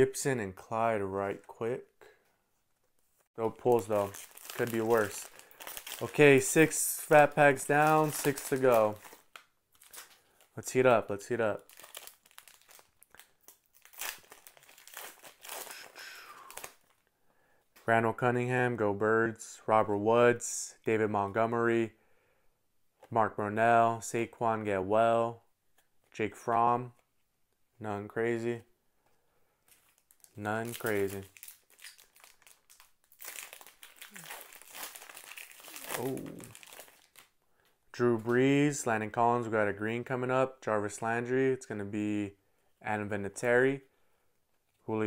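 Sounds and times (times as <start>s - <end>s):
plastic wrapper crinkling: 3.4s - 6.7s, 7.6s - 10.5s, 11.6s - 17.1s, 29.7s - 37.4s.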